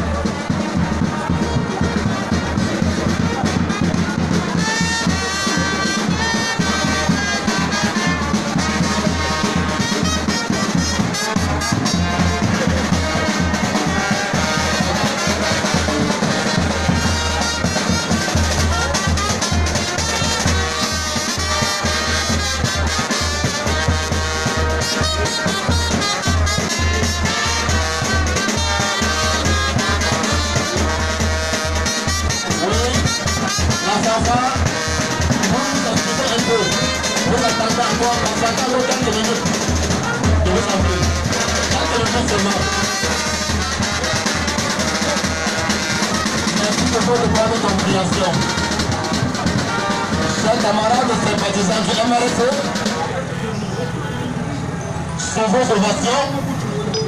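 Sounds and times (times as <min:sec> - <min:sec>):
bass drums beating: 0:00.0 - 0:53.3
trumpets and brass playing tune: 0:00.0 - 0:56.4.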